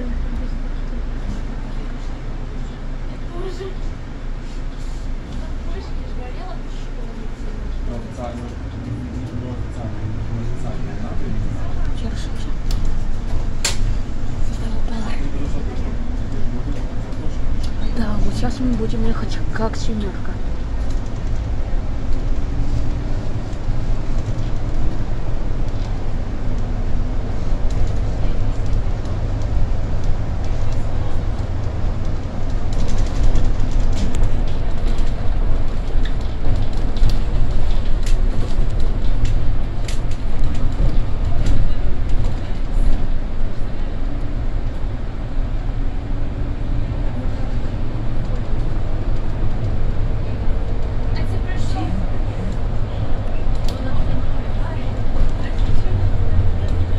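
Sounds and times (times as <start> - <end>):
bus engine and road rumble: 0.0 - 56.9.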